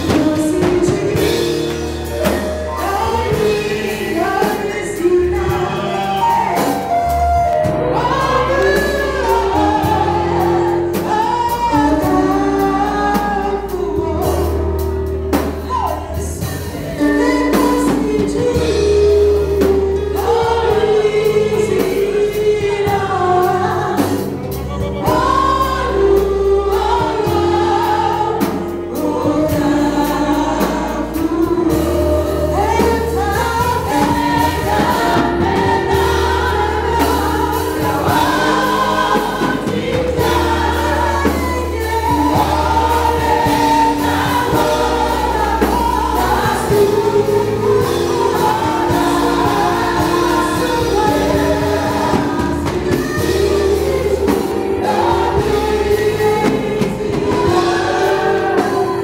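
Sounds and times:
congregation singing praise song: 0:00.0 - 0:59.0
deep held bass notes: 0:00.0 - 0:59.0
instrumental accompaniment: 0:00.0 - 0:59.0.

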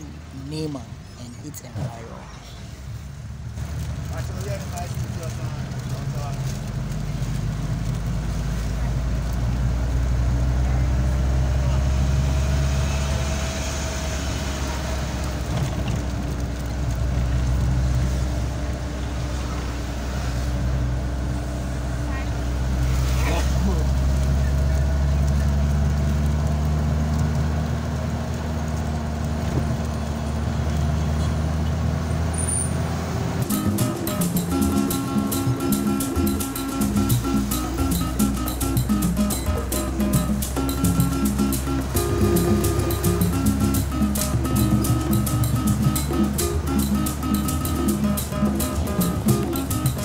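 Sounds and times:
vehicle engine and road noise: 0:00.0 - 0:50.0.

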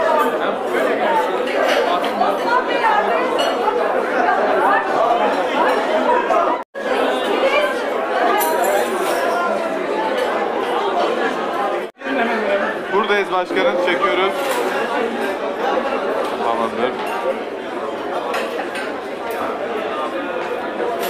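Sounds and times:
crowd chatter in a hall: 0:00.0 - 0:21.0.

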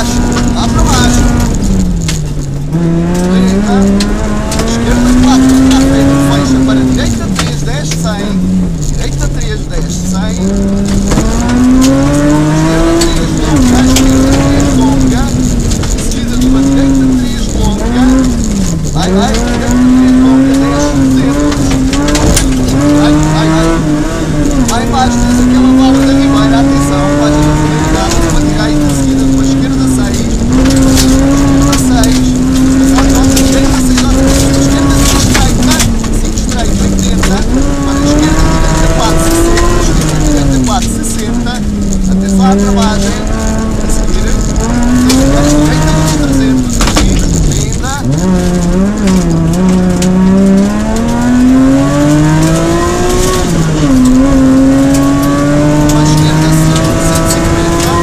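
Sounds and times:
gravel ticking under car: 0:00.0 - 0:58.0
rally car engine revving: 0:00.0 - 0:58.0.

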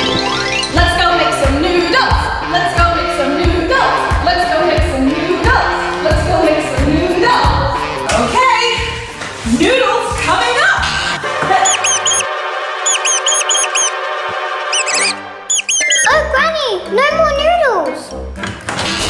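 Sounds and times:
cheerful background music: 0:00.0 - 0:19.0
cartoon mouse squeaks: 0:11.6 - 0:12.2, 0:12.9 - 0:13.9, 0:14.8 - 0:16.3.

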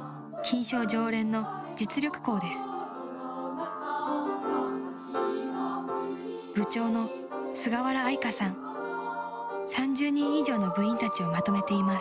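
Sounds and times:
girls' choir singing chords: 0:00.0 - 0:12.0.

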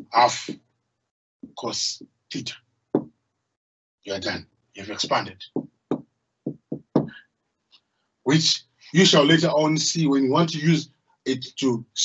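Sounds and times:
marker knocking on whiteboard: 0:03.0 - 0:03.2, 0:05.5 - 0:07.2.

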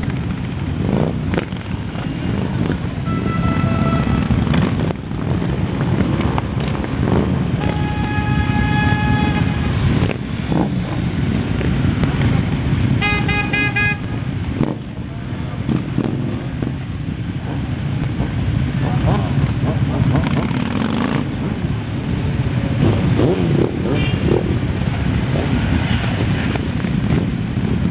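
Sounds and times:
motorcycles riding past: 0:00.0 - 0:27.9
horn short toots: 0:03.0 - 0:04.4, 0:07.6 - 0:10.0, 0:13.0 - 0:14.2
horn sounding: 0:03.0 - 0:04.6, 0:07.6 - 0:10.1, 0:13.0 - 0:14.3.

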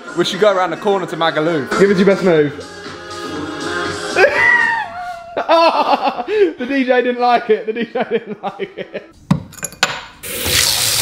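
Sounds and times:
water running into bathtub: 0:10.2 - 0:11.0.

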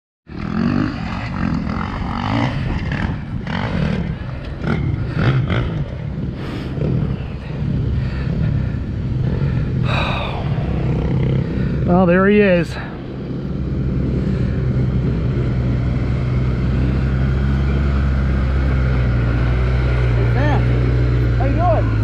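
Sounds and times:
engine running at low speed: 0:00.3 - 0:22.0
wind buffeting microphone: 0:00.4 - 0:22.0.

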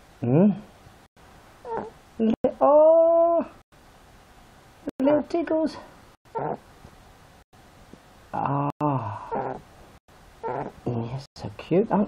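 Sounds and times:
piglet grunt: 0:01.6 - 0:02.0, 0:06.3 - 0:06.7, 0:08.4 - 0:09.7, 0:10.4 - 0:10.9.

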